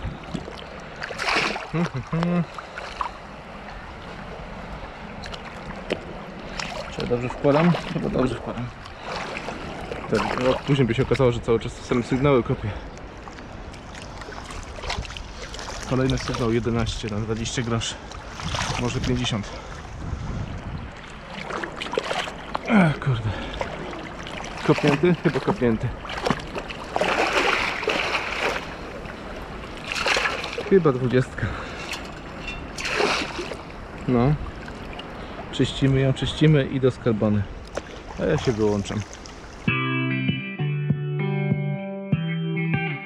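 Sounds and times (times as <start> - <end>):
water sloshing and splashing: 0.0 - 39.7.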